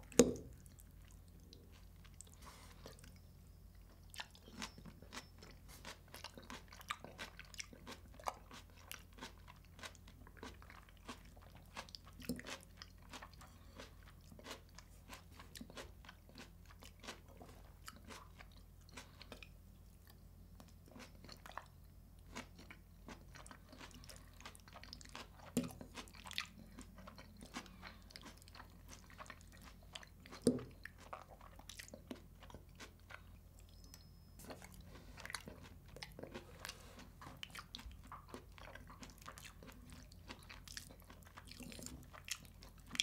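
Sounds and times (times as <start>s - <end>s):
chewing crunchy salad: 0.0s - 43.0s.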